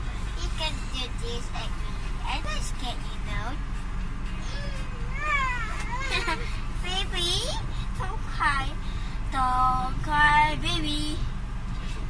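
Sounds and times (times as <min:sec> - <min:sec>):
car interior rumble: 0:00.0 - 0:12.0
child's sing-song voice: 0:09.4 - 0:11.2.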